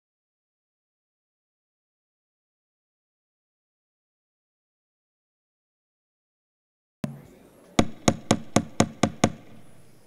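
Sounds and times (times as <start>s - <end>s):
sharp knocks on hard surface: 7.0s - 9.7s.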